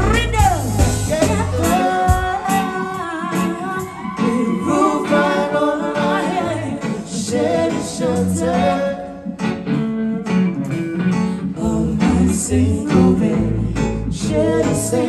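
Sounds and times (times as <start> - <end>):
drums: 0.0 - 4.2
person singing: 0.0 - 9.4
keyboard: 0.0 - 15.0.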